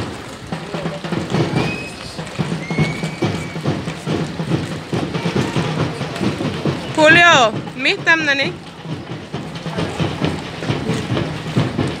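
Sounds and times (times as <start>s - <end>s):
group footsteps on pavement: 0.0s - 12.0s.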